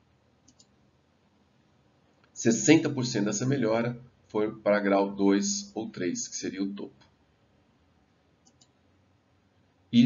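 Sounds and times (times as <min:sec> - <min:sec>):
faint short clicks: 0:00.4 - 0:00.8, 0:08.4 - 0:08.8.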